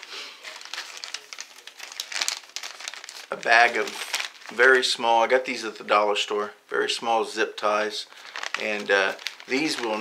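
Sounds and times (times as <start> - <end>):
plastic bag crinkling: 0.0 - 5.4, 8.1 - 10.0.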